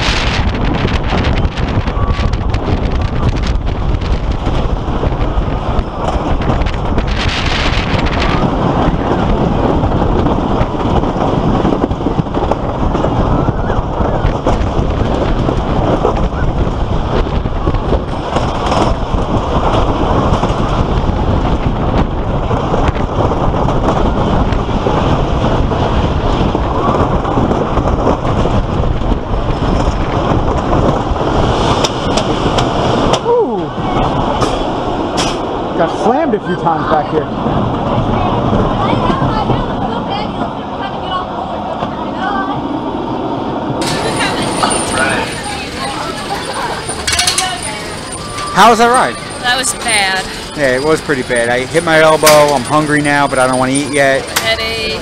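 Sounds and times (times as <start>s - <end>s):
roller coaster rumble and rattle: 0.0s - 55.0s
wind rush on microphone: 0.0s - 55.0s
riders' voices: 43.8s - 55.0s.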